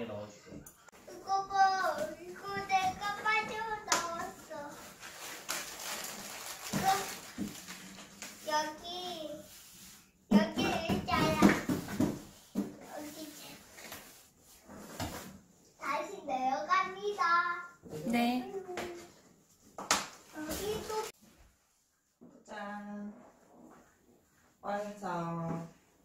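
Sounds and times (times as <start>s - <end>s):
cardboard rustling and knocking: 10.3s - 12.9s
young child talking: 20.4s - 21.2s.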